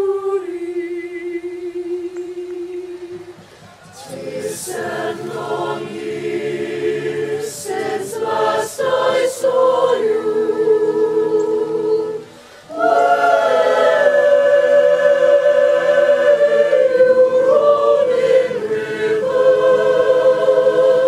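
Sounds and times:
choir singing sustained chords: 0.0s - 3.4s, 4.0s - 21.0s.

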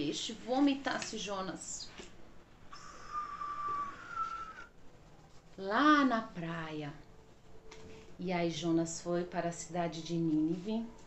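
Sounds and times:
high whistle-like tone: 2.8s - 4.8s.

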